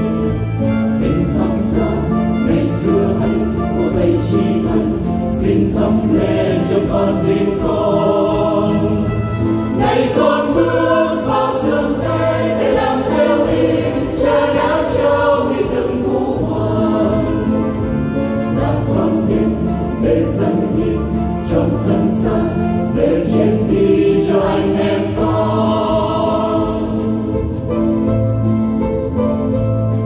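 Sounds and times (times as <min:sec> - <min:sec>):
choir singing a hymn: 0:00.0 - 0:27.8
musical accompaniment: 0:00.0 - 0:30.0.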